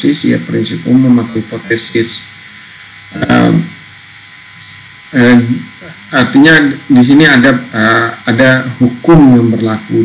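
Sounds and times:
man speaking: 0.0s - 2.4s, 3.1s - 3.8s, 5.1s - 10.0s
faint electrical buzz: 0.0s - 10.0s.

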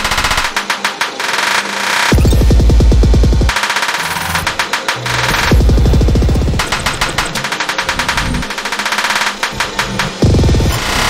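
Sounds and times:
stuttering percussive electronic hits: 0.0s - 11.0s
heavy bass: 2.2s - 3.5s, 4.2s - 8.5s, 9.5s - 11.0s.

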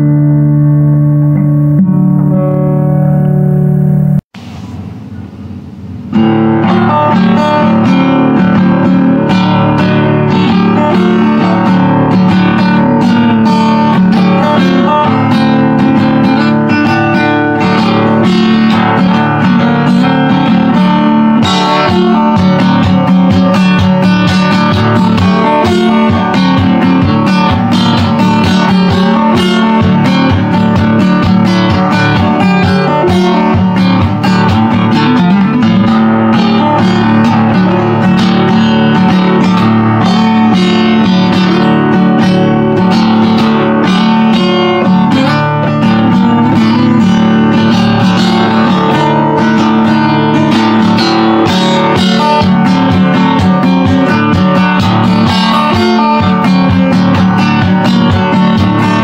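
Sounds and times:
acoustic guitar plucked and strummed: 0.0s - 59.0s.

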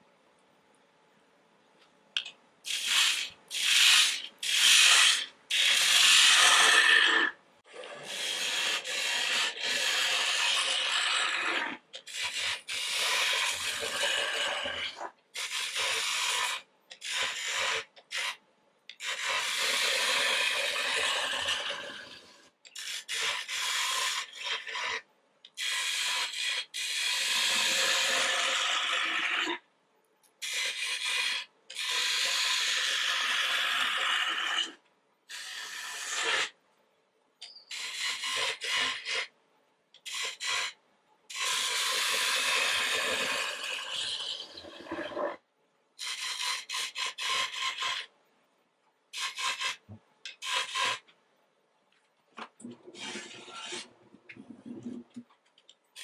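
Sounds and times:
lathe gouge scraping wood: 2.8s - 18.2s, 53.0s - 54.0s.

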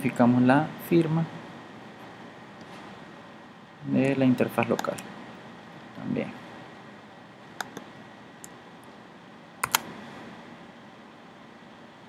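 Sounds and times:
steady background hiss: 0.0s - 12.0s
computer keyboard clicking: 9.6s - 9.9s.

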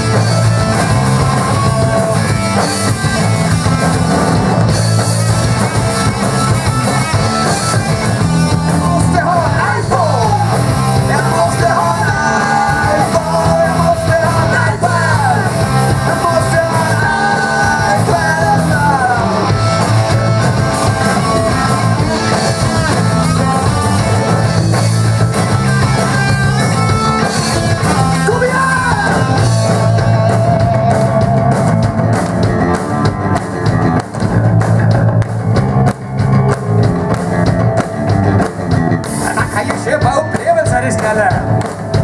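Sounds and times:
bass guitar: 0.0s - 42.0s
drum kit: 0.0s - 42.0s
electric guitar: 0.0s - 42.0s
person singing: 8.7s - 19.6s, 28.2s - 31.5s.

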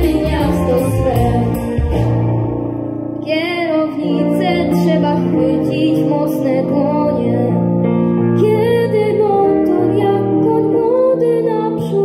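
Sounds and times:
small band playing popular song: 0.0s - 6.5s.

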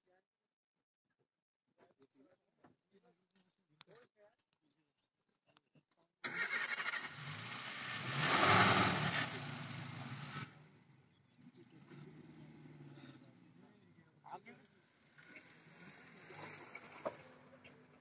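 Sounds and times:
car engine starting and revving: 6.2s - 13.7s, 14.7s - 18.0s.

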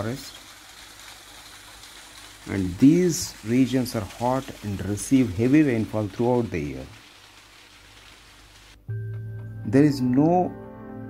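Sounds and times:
stream trickling over rocks: 0.0s - 8.8s
background music low held note: 8.8s - 11.0s.

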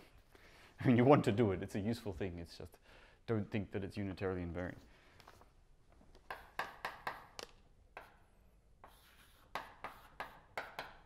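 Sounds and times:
chalk tapping on blackboard: 6.2s - 11.0s.

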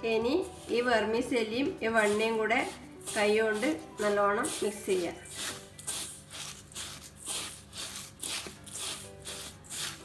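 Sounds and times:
dry noodles rustling in a bowl: 1.7s - 10.0s.

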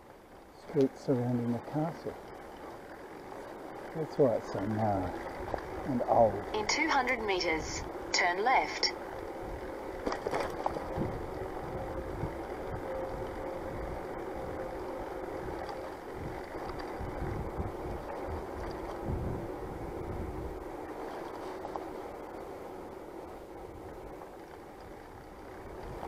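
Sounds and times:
tyres on tarmac: 0.0s - 16.5s
faint steady hum: 0.0s - 26.0s
wind rumbling on microphone: 0.0s - 26.0s.

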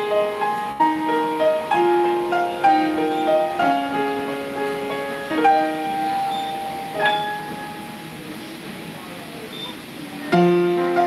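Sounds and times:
murmur of voices: 0.0s - 11.0s
upright piano chords and notes: 0.0s - 11.0s.

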